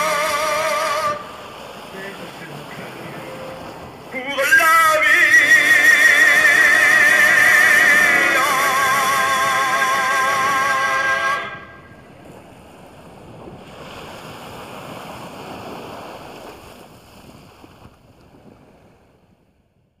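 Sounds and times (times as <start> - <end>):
sea water rushing: 0.0 - 19.0
wind: 0.0 - 20.0
sung note with vibrato: 5.2 - 11.9.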